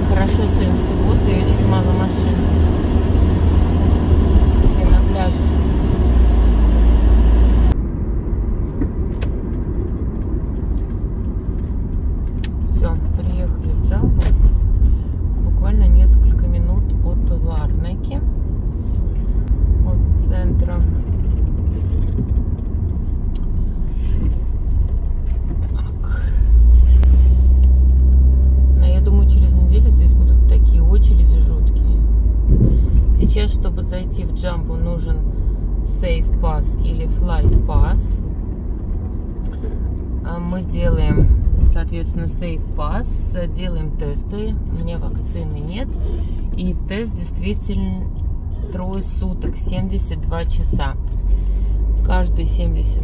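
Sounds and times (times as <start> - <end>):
car road and engine rumble: 0.0 - 53.0.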